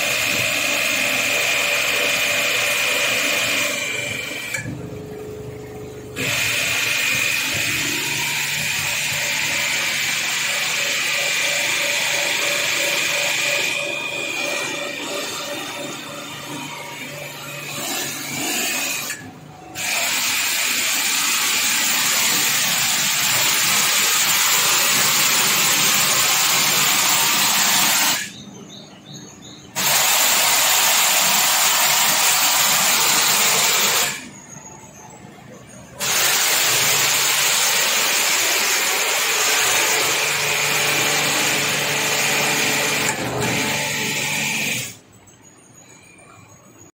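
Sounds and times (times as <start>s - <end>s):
faint machine hum: 0.0s - 20.1s, 28.2s - 29.8s, 31.2s - 46.9s
water jet hissing: 36.0s - 39.4s.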